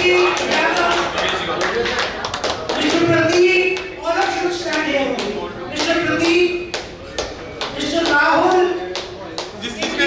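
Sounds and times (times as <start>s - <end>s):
hand clapping: 0.0s - 10.0s.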